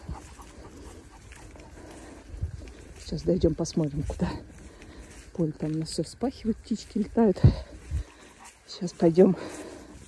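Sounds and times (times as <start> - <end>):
dog panting faintly: 0.0 - 3.0, 7.4 - 10.0
wind rumble on microphone: 0.0 - 8.6.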